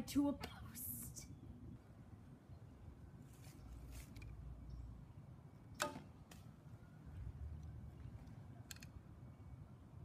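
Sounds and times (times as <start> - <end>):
bowstring snap and twang: 5.8 - 6.5.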